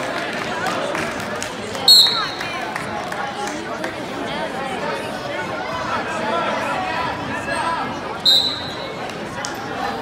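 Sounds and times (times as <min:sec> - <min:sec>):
crowd chatter: 0:00.0 - 0:10.0
referee's whistle blast: 0:08.2 - 0:09.0.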